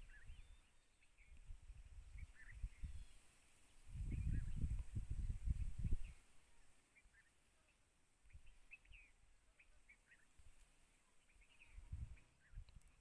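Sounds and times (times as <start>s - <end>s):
bird chirps: 0.0s - 12.8s.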